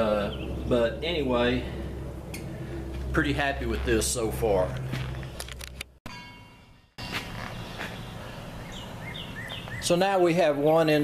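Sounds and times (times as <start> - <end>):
small birds chirping: 0.0 - 1.2, 7.0 - 10.4
low steady hum: 0.0 - 9.8
outdoor background noise: 0.0 - 11.0.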